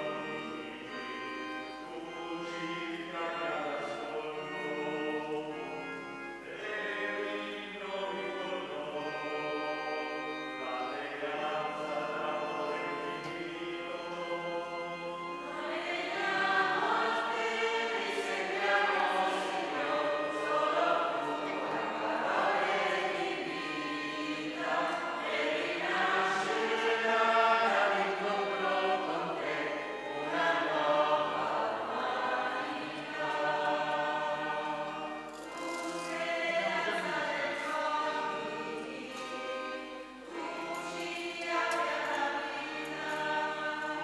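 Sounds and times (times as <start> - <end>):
choir and congregation singing hymn: 0.0 - 44.0
organ accompaniment: 0.0 - 44.0.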